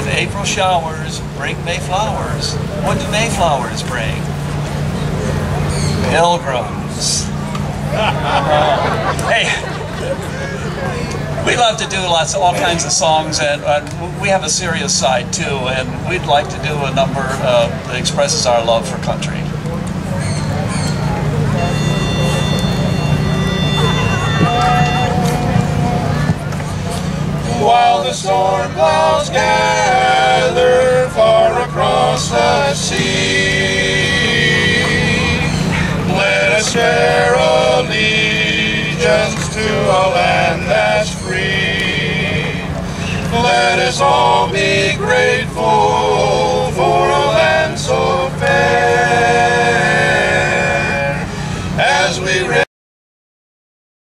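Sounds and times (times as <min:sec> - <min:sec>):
steady low hum: 0:00.0 - 0:52.6
pitch pipe note: 0:21.6 - 0:26.3
men singing in close harmony: 0:27.4 - 0:52.7.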